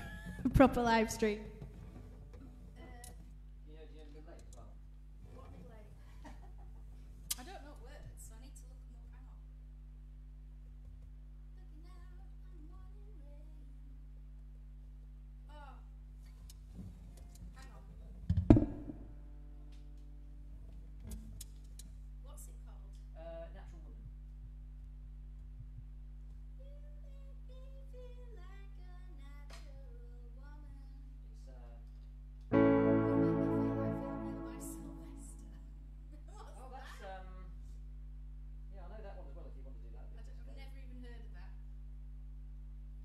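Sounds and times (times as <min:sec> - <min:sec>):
loud ringing knock: 0:18.5 - 0:19.0
keyboard piano chord ringing: 0:32.5 - 0:35.7.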